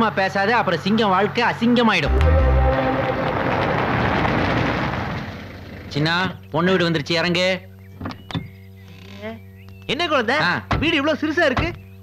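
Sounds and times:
car driving on dirt lane: 2.2 - 6.0.

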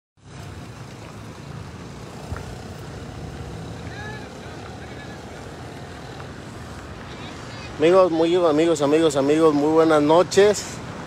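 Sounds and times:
vehicle engines rumbling: 0.2 - 11.0
faint distant voices: 2.1 - 10.8.

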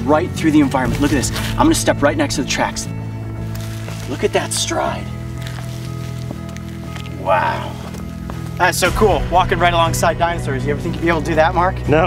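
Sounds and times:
background music low notes: 0.0 - 12.0
footsteps on stone: 3.0 - 9.2.

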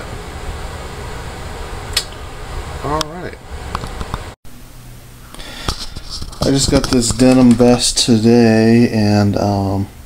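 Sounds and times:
short sharp click: 1.9 - 2.2.

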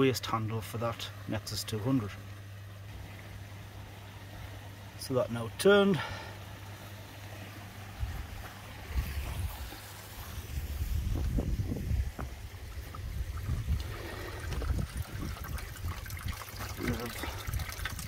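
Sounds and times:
steady low hum: 0.0 - 18.0
water trickling: 0.0 - 18.0
low thumps: 10.7 - 15.0.

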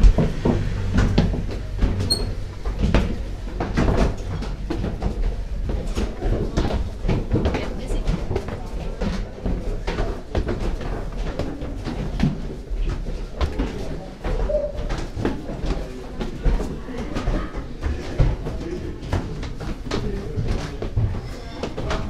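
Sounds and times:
footsteps in echoing room: 0.0 - 22.0.

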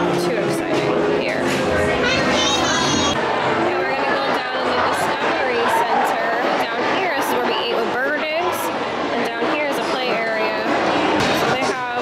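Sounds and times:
children chattering and calling out: 1.7 - 11.2.

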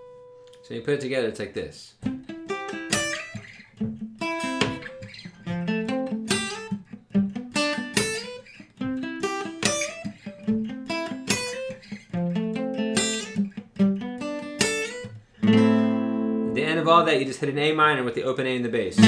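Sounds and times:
acoustic guitar arpeggio: 2.0 - 17.4.

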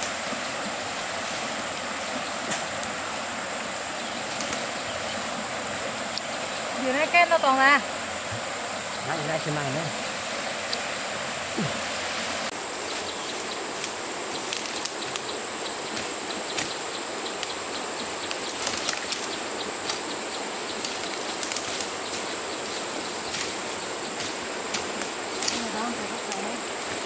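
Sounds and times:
fern fronds rustling: 0.0 - 27.0
river flowing: 0.0 - 27.0.

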